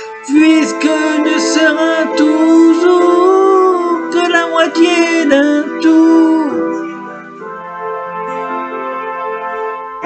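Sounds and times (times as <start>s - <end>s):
man singing held note: 0.0s - 6.8s
keyboard backing: 0.0s - 10.0s.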